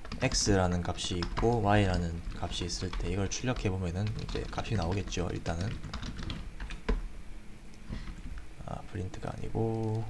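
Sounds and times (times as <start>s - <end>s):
computer keyboard typing: 0.0s - 7.0s, 9.5s - 10.0s.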